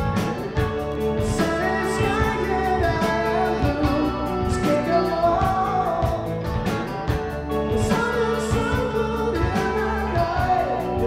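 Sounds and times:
electric bass and drums: 0:00.0 - 0:11.0
man singing: 0:00.6 - 0:06.7, 0:07.5 - 0:11.0.

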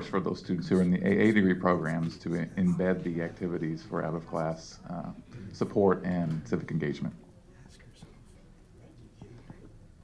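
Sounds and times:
murmur of low voices: 0:00.0 - 0:10.0.

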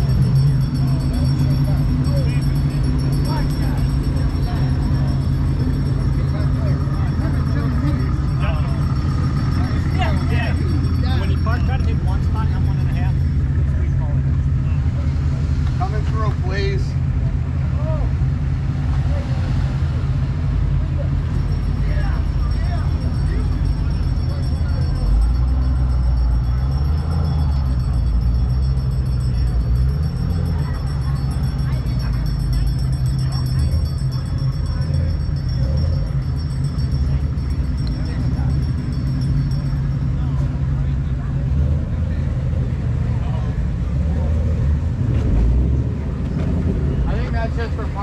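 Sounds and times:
car engine running: 0:00.0 - 0:48.0
people chattering: 0:00.0 - 0:48.0.

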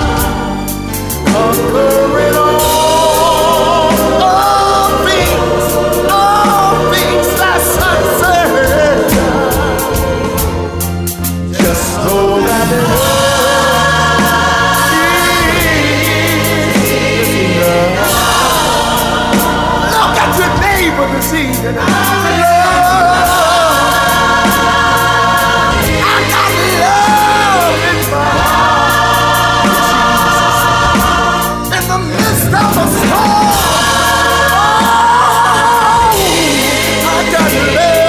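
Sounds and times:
backing choir singing: 0:00.0 - 0:38.0
band with bass and drums: 0:00.0 - 0:38.0.

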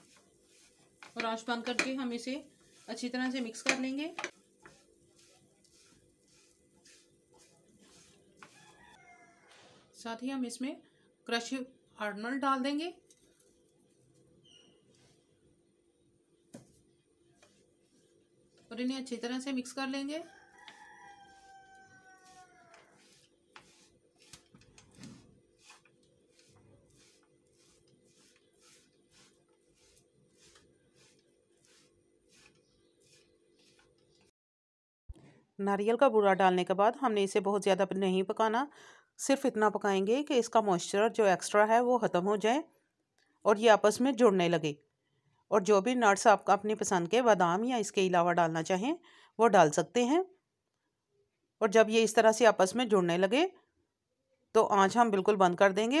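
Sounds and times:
spatula scraping a pan: 0:00.0 - 0:09.0, 0:20.7 - 0:34.0.

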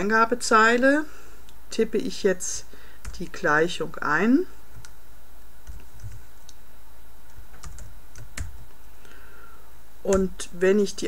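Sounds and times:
computer keyboard typing: 0:05.6 - 0:06.6, 0:07.3 - 0:08.5.

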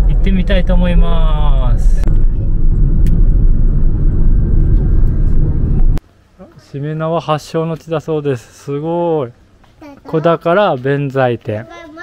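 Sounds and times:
car engine and road noise: 0:00.0 - 0:06.0.

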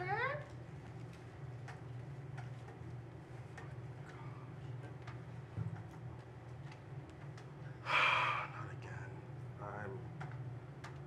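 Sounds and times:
low room hum: 0:00.0 - 0:11.0
person breathing out sharply: 0:07.8 - 0:08.5.

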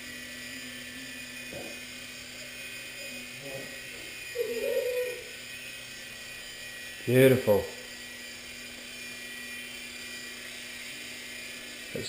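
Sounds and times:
rc helicopter motor whine: 0:00.0 - 0:12.0.

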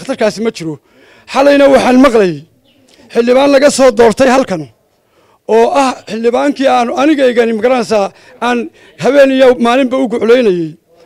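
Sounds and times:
man speaking: 0:00.0 - 0:04.8, 0:05.4 - 0:11.0.

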